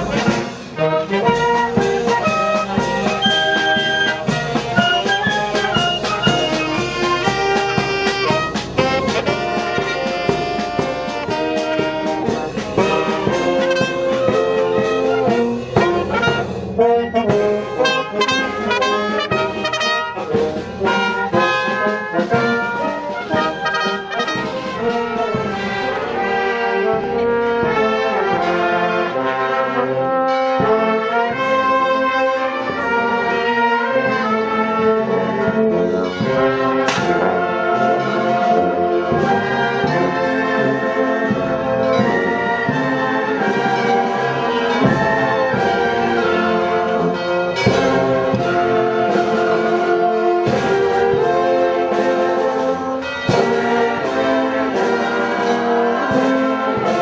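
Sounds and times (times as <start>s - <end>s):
marching band playing a march: 0.0s - 57.0s.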